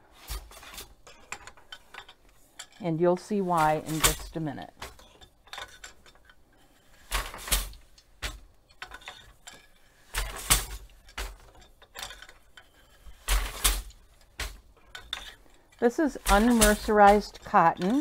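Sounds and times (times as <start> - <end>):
wooden loom beater knocking: 3.4 - 5.8, 13.1 - 18.0.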